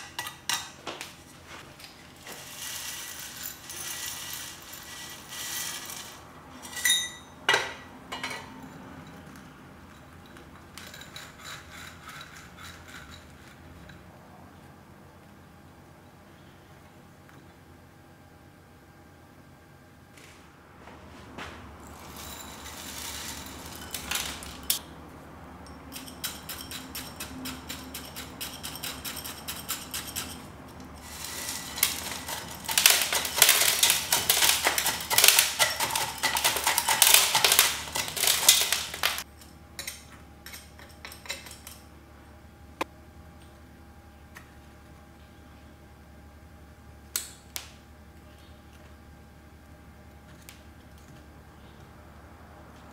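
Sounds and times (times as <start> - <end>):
soil grit pouring and rattling: 2.1 - 6.3, 21.8 - 24.8, 31.0 - 39.3.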